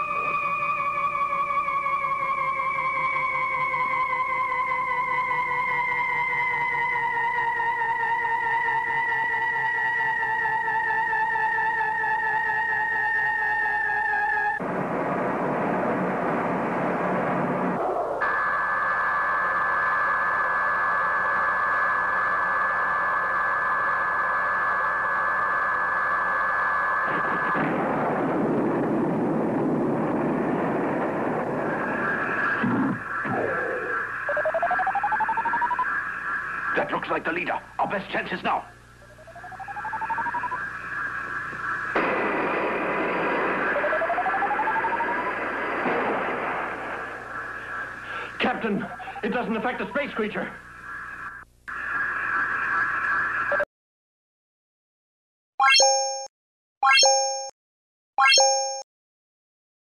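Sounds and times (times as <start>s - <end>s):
burst of noise: 24.7s - 37.6s, 39.5s - 49.3s
steady electronic hum: 27.8s - 53.6s
wavering electronic tone: 33.2s - 36.9s, 39.0s - 41.9s, 55.6s - 57.5s, 58.2s - 58.8s.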